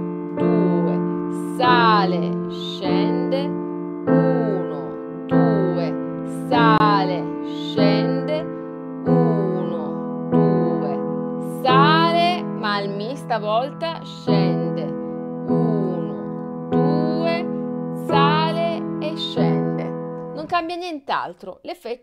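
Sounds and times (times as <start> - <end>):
woman singing softly: 0.0 - 8.5, 9.1 - 20.6
slow upright piano: 0.0 - 20.4.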